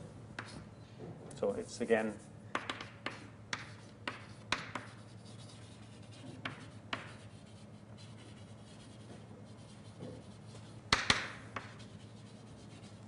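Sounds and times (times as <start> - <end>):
low room hum: 0.0 - 13.0
scratching writing strokes: 0.4 - 0.6, 1.5 - 13.0
sharp taps on a board: 2.5 - 5.0, 10.9 - 11.8.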